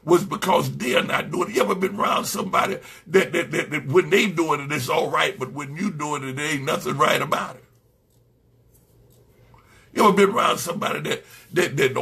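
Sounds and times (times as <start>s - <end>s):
man speaking: 0.0s - 7.7s, 10.0s - 12.0s.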